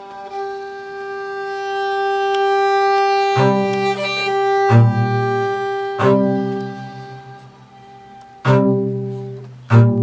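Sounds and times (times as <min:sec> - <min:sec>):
violin long bowed note: 0:00.0 - 0:10.0.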